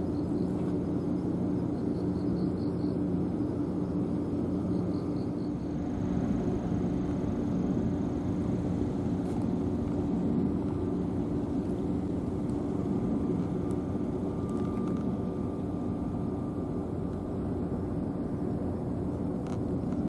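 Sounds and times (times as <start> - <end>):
faint thin whine: 0.0 - 20.0
low mechanical drone of machinery: 0.0 - 20.0.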